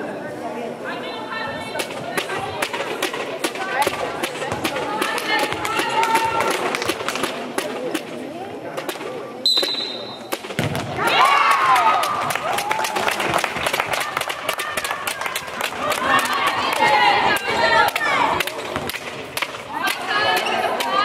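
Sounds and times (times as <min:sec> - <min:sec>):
players and spectators calling out: 0:00.8 - 0:07.6, 0:09.4 - 0:13.1, 0:13.9 - 0:21.0
knocks and claps on court: 0:03.8 - 0:08.1, 0:10.4 - 0:16.9, 0:17.9 - 0:21.0
high referee's whistle: 0:09.4 - 0:10.3.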